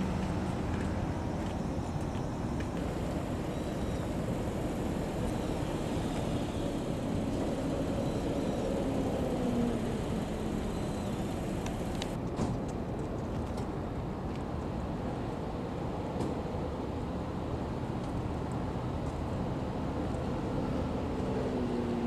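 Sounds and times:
cars driving past: 0.0 - 12.2.

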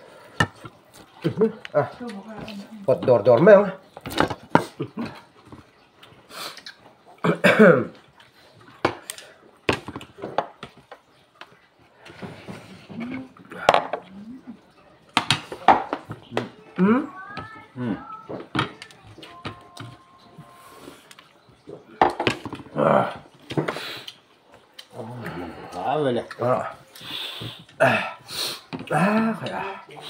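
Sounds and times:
people talking: 16.3 - 21.0, 28.9 - 30.0.

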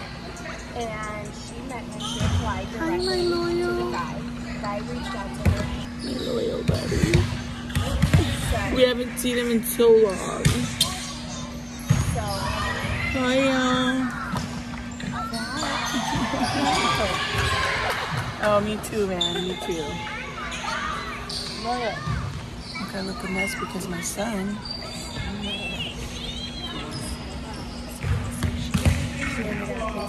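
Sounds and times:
balls bouncing on gym floor: 2.0 - 5.9, 6.5 - 11.2, 11.8 - 19.4, 27.9 - 30.0
volleyballs thumping on gym floor: 6.7 - 8.8, 10.4 - 10.9, 28.0 - 29.5.

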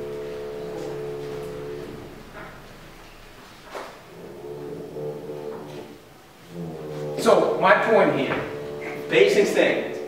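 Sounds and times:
man's drawn-out hesitation sound: 7.2 - 10.0.

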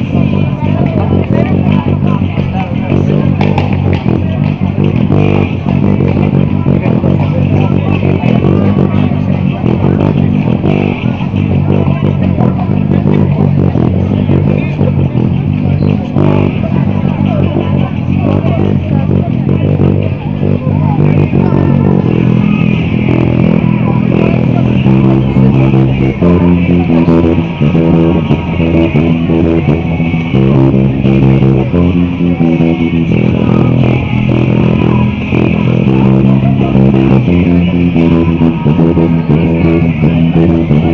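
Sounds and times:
electric bass guitar line: 0.0 - 40.9
loud rock music: 0.0 - 40.9.

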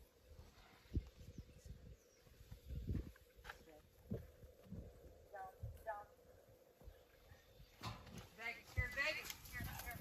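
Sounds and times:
hooves thudding on dirt: 1.0 - 6.0, 6.7 - 10.0.

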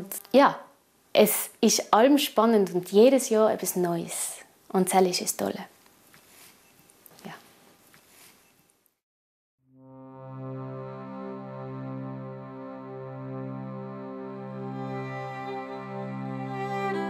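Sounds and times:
button accordion chords: 9.9 - 17.0.

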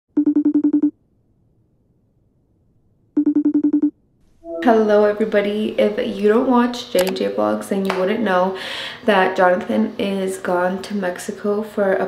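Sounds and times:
phone ringtone trilling beeps: 0.2 - 0.9, 3.2 - 3.9.

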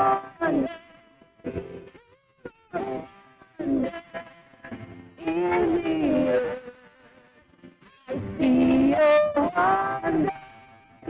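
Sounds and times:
woman singing a held note: 5.2 - 6.6, 8.1 - 10.4.

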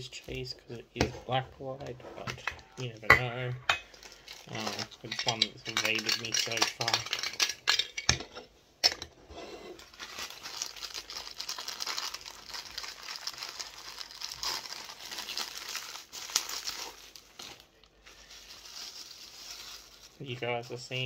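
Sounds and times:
plastic packaging crinkling: 3.9 - 7.9, 9.8 - 21.0.

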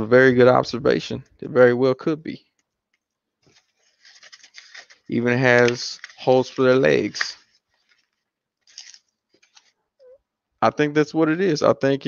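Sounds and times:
soft packaging rustle: 2.6 - 9.9.

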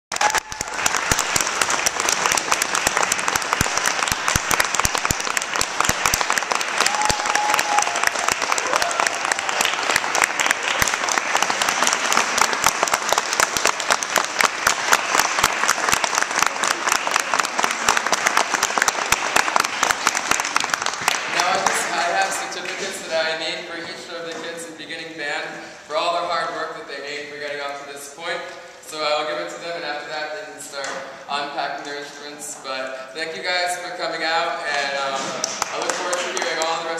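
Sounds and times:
audience clapping: 0.1 - 23.4, 34.7 - 36.9.

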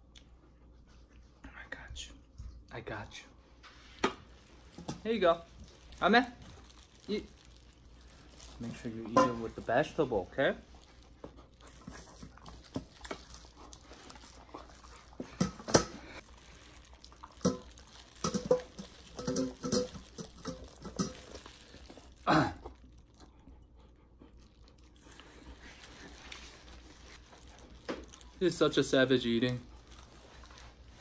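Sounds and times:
dog chewing and licking: 5.5 - 31.0
person clearing throat: 22.2 - 22.7.

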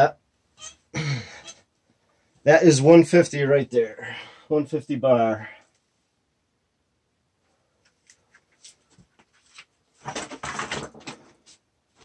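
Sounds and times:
rustling and scraping: 7.8 - 12.0.

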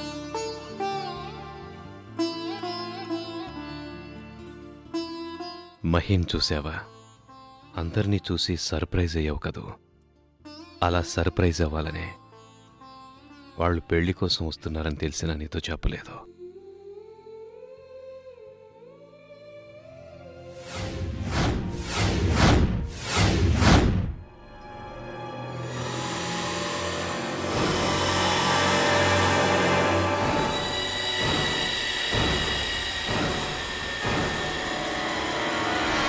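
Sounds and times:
high droning tone: 24.6 - 36.0
dense low drone: 25.5 - 36.0.

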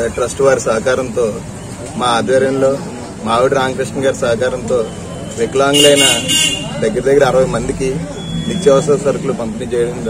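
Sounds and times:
man speaking: 2.0 - 10.0
horn toot: 5.7 - 6.8.

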